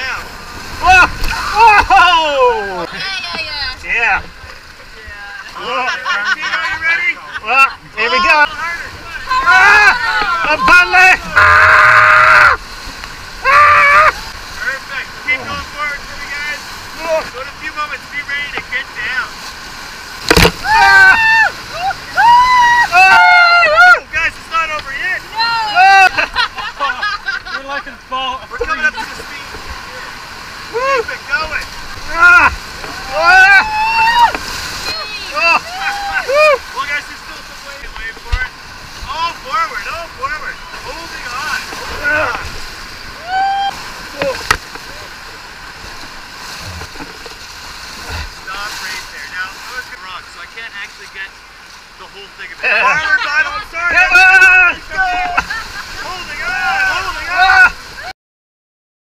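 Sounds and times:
river rushing: 0.0 - 58.1
people screaming and yelling: 0.8 - 2.9, 9.2 - 12.6, 13.4 - 14.4, 20.6 - 24.1, 25.3 - 26.4, 32.0 - 36.8, 41.4 - 44.4, 52.8 - 58.1
short low thump: 20.2 - 20.7, 48.0 - 48.5.

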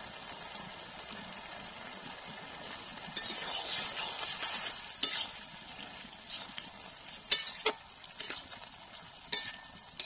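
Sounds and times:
curry simmering with bubbling hiss: 0.0 - 10.0.

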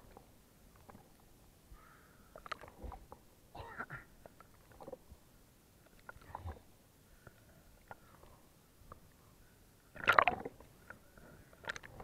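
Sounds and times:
water lapping and sloshing: 0.0 - 3.3, 4.2 - 9.2, 9.8 - 12.0
wet splashes: 10.0 - 10.6.

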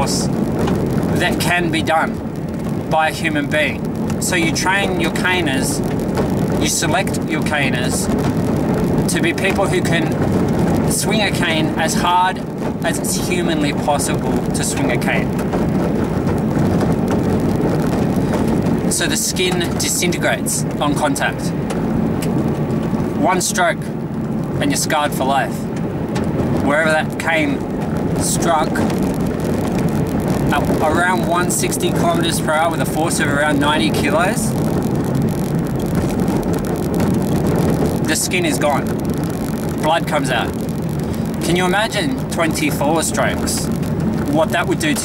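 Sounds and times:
tyres crunching on dirt road: 0.0 - 45.0
vehicle engine rumble: 0.0 - 45.0.

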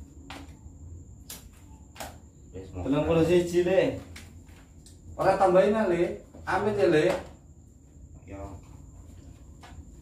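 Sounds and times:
playing cards slapping on table: 0.2 - 0.6, 1.2 - 2.3, 4.0 - 4.9.

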